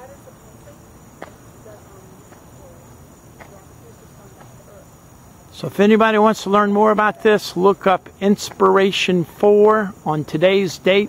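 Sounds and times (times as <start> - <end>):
night insects chirring: 0.0 - 11.0.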